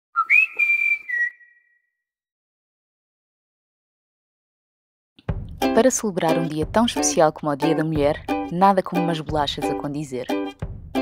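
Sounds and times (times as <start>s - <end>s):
whistled jingle: 0.2s - 2.0s.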